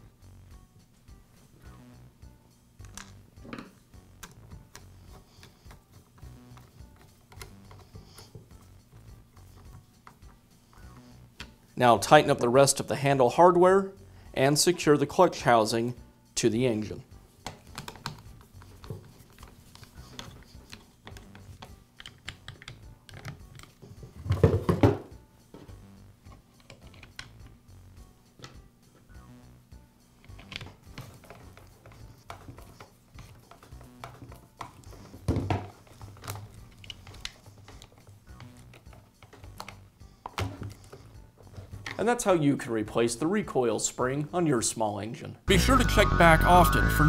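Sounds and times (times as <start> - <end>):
plastic parts knocking: 17.4 - 19.4, 20.1 - 25.1, 30.3 - 42.0.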